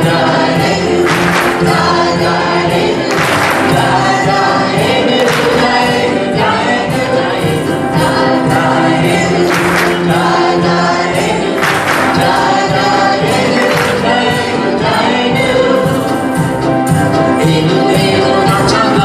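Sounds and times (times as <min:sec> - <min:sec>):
group of voices singing: 0:00.0 - 0:19.0
keyboard and piano: 0:00.0 - 0:19.0
worship band music: 0:00.0 - 0:19.0.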